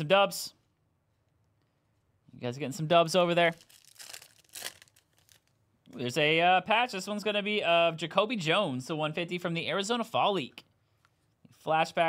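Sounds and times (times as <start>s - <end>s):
foil wrapper tearing and crinkling: 3.5s - 5.5s.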